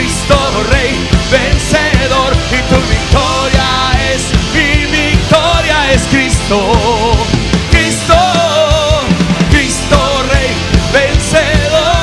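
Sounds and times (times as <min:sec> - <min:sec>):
band playing: 0:00.0 - 0:12.0
drum beat: 0:00.0 - 0:12.0
person singing: 0:00.0 - 0:12.0.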